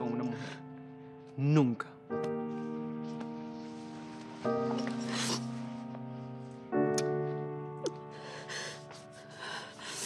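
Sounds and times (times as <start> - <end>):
soft sad music: 0.0 - 10.0.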